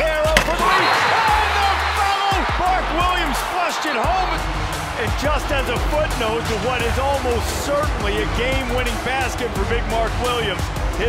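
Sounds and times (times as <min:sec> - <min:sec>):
commentator shouting: 0:00.0 - 0:10.6
background music: 0:00.0 - 0:11.0
arena crowd roaring: 0:00.1 - 0:11.0.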